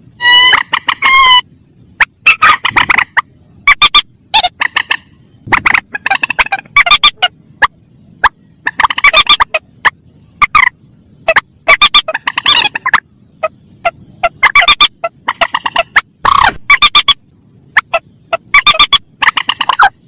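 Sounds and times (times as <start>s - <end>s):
rail bird calls: 0.0s - 20.0s.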